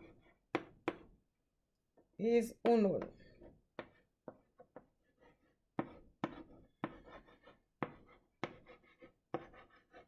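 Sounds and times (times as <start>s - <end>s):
chalk writing on chalkboard: 0.0s - 1.1s, 2.7s - 10.0s.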